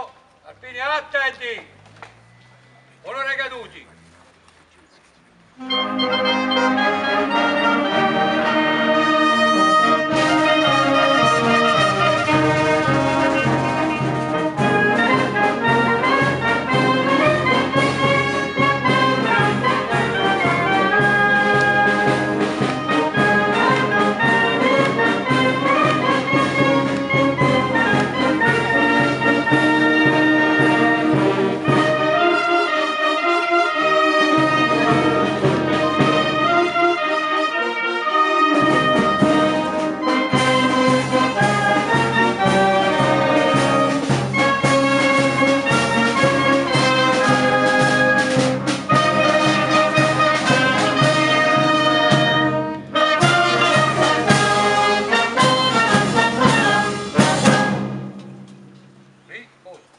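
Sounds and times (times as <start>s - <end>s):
brass band playing a march: 5.5s - 58.7s
parade drums beating: 5.6s - 59.4s.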